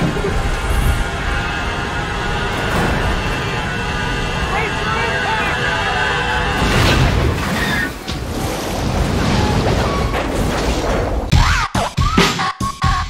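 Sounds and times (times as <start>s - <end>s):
airliner engine and cabin noise: 0.0s - 6.6s.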